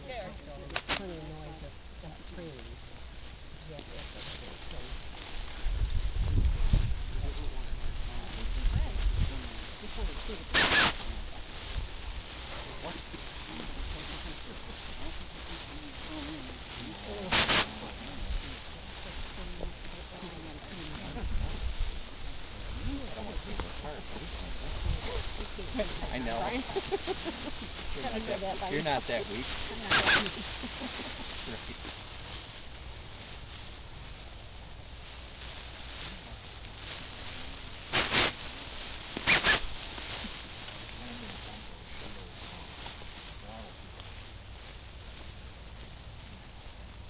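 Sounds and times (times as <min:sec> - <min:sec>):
steady high hiss: 0:00.0 - 0:47.0
shrill whistle blasts: 0:10.6 - 0:11.0, 0:17.3 - 0:17.7, 0:29.8 - 0:30.3, 0:37.9 - 0:38.4, 0:39.3 - 0:39.7.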